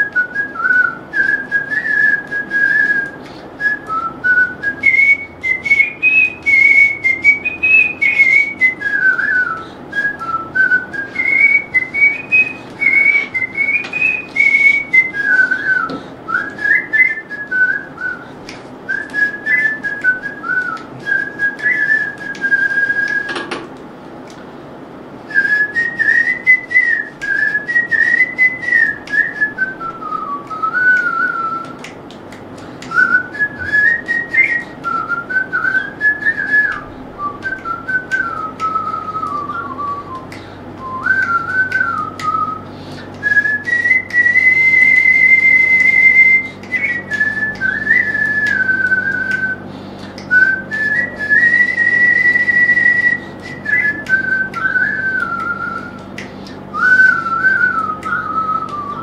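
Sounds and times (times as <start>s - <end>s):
man whistling a melody: 0.0s - 23.6s, 25.3s - 32.0s, 32.6s - 59.0s.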